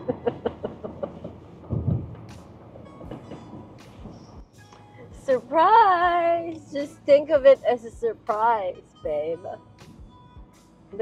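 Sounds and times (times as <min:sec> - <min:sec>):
woman laughing: 0:00.0 - 0:01.3.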